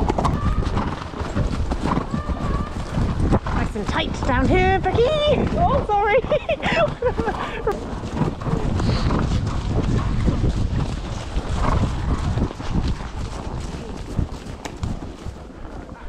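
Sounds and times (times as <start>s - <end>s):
hoofbeats on soft track: 0.0s - 16.0s
wind buffeting microphone: 0.0s - 16.0s.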